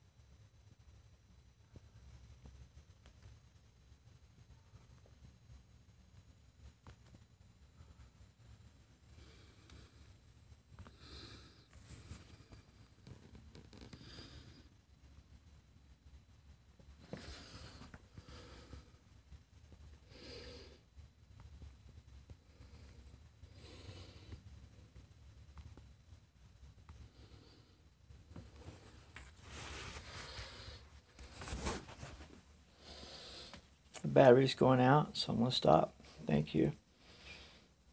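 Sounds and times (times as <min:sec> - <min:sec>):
soft breathing: 0:07.8 - 0:15.6, 0:16.9 - 0:25.0, 0:26.9 - 0:34.0, 0:35.9 - 0:37.9.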